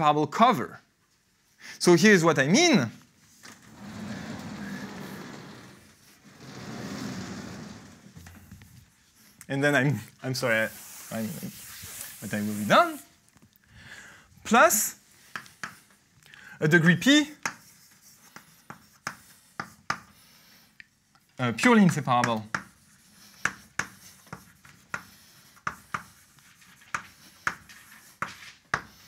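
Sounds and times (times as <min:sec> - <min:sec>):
chalkboard panels rumbling on tracks: 0:03.6 - 0:08.2
chalk tapping on chalkboard: 0:15.3 - 0:15.9, 0:17.4 - 0:20.2, 0:21.9 - 0:29.0.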